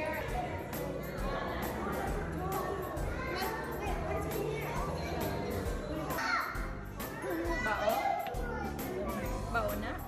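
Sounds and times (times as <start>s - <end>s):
children talking and calling out: 0.0s - 9.7s.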